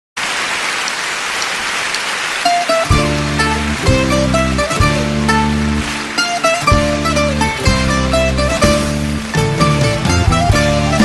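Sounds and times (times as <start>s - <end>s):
audience applause: 0.2s - 11.0s
band playing plucked strings and chords: 2.4s - 11.0s.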